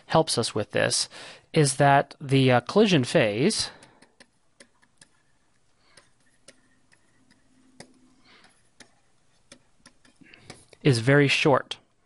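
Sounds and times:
stylus tapping on pen tablet: 0:03.8 - 0:10.8.

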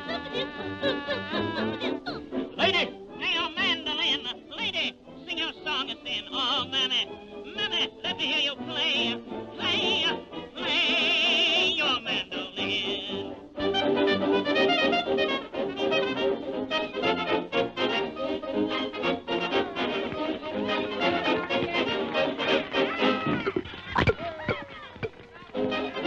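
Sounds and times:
rhythmic band with brass: 0:13.3 - 0:23.7.

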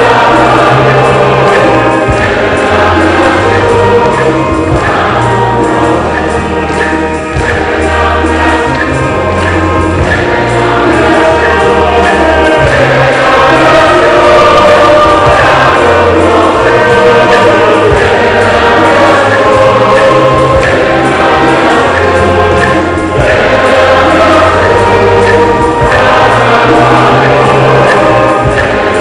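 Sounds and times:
church choir singing: 0:00.0 - 0:29.0.

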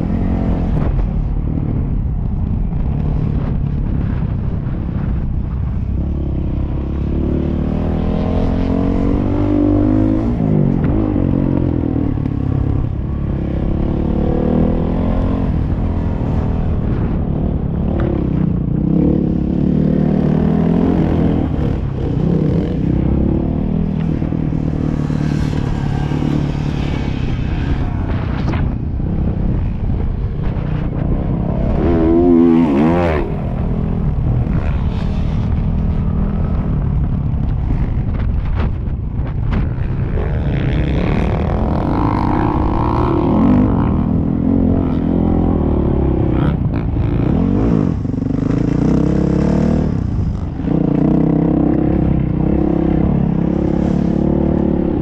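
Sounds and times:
wind noise on microphone: 0:00.0 - 0:55.0.

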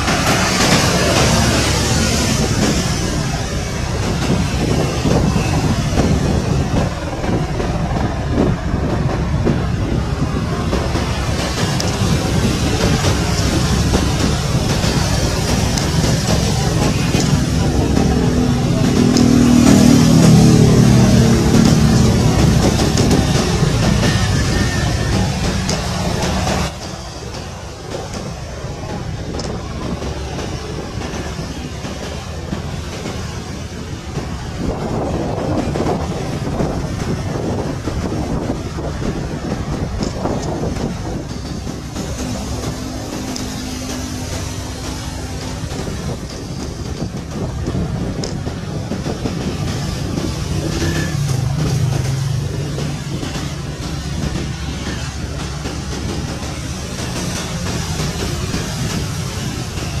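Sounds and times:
helicopter hovering: 0:00.0 - 1:00.0.

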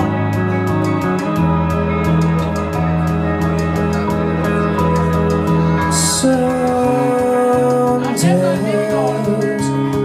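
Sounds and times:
bass notes: 0:00.0 - 0:10.0
electric guitar sustained chords: 0:00.0 - 0:10.0
ticking beat: 0:00.0 - 0:10.0.

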